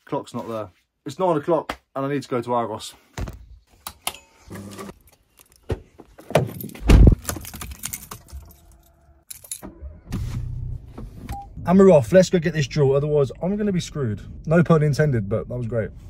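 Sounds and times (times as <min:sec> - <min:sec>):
car keys jangling: 0:04.9 - 0:05.7, 0:06.3 - 0:10.0.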